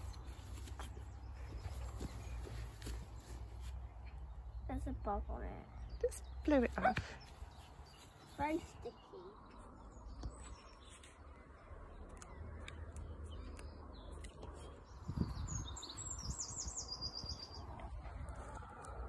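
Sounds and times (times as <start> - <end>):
songbird singing: 0.0 - 19.0.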